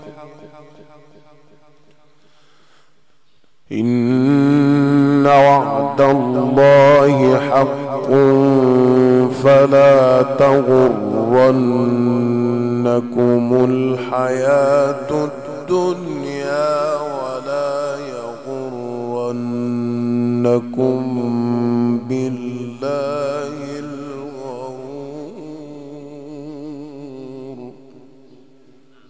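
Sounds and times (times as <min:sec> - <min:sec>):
man reciting melodically: 0:00.0 - 0:02.1, 0:03.7 - 0:29.0.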